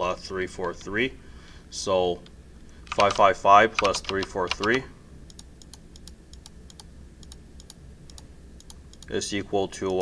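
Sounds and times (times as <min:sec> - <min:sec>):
faint keyboard clicks: 0:02.9 - 0:09.2.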